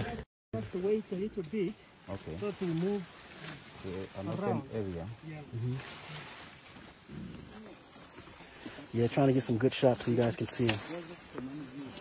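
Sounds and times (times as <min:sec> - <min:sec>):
forest background: 0:00.0 - 0:12.0
gorilla grunting rumble: 0:07.1 - 0:07.8.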